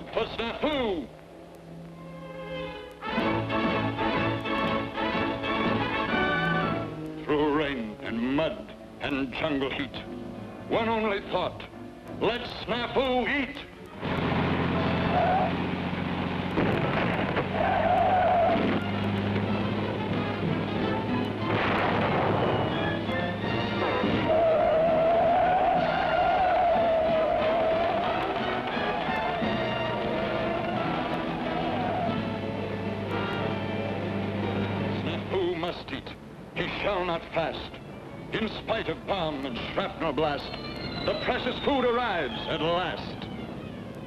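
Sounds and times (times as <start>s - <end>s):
orchestral music: 2.0s - 9.0s, 18.5s - 35.6s
noisy blasts: 13.8s - 44.0s.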